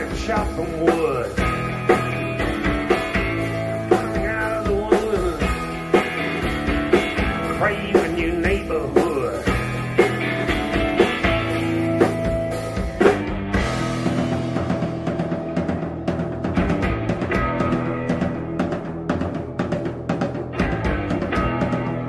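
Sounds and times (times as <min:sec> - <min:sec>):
drum kit: 0:00.0 - 0:22.0
electric bass: 0:00.0 - 0:22.0
electric guitar: 0:00.0 - 0:22.0.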